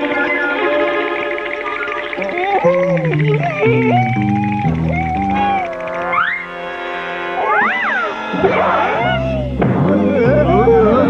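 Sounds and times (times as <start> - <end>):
held music chords: 0.0 - 11.0
cartoon characters screaming: 2.2 - 6.3, 7.4 - 11.0.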